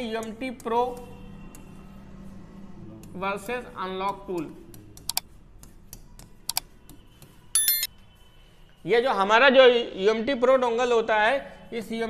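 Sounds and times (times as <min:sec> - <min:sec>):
bright bell ding: 0:07.6 - 0:07.9.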